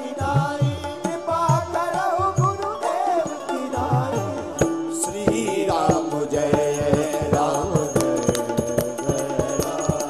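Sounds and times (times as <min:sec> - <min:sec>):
man singing devotional song: 0:00.0 - 0:10.0
percussion steady beat: 0:00.0 - 0:10.0.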